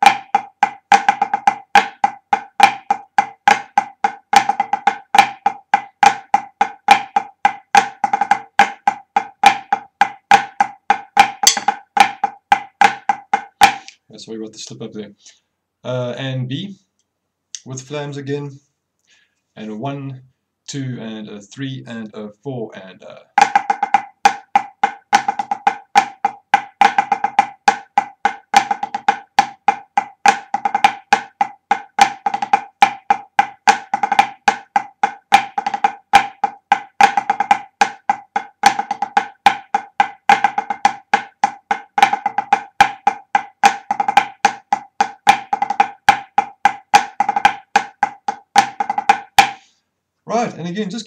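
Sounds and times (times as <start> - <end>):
snare drumming with flams: 0.0 - 13.9, 23.4 - 49.6.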